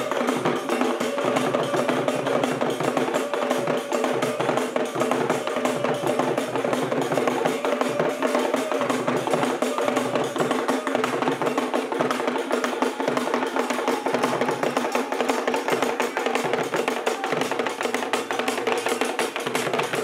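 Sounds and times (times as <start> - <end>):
hand drums playing dance rhythm: 0.0 - 20.0.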